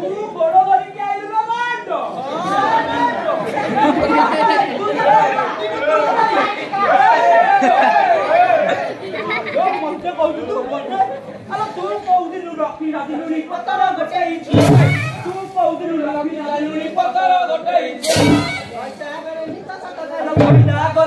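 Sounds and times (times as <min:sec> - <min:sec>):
high-pitched voices quarreling: 0:14.5 - 0:15.6, 0:18.0 - 0:19.0.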